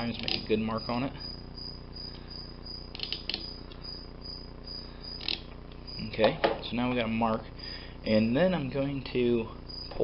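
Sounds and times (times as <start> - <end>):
faint pulsing high whine: 0.0 - 10.0
steady low hum: 0.0 - 10.0.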